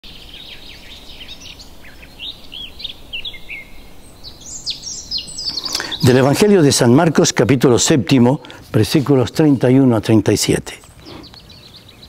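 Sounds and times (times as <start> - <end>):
birds chirping: 0.0 - 12.0
faint background hiss: 0.0 - 12.0.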